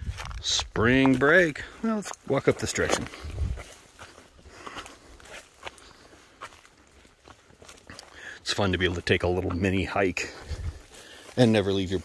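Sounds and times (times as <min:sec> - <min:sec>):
footsteps on rocky path: 0:00.0 - 0:12.0.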